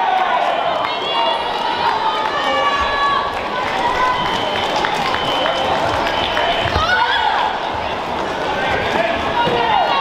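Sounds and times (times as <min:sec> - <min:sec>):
babble of voices calling out: 0:00.9 - 0:10.0.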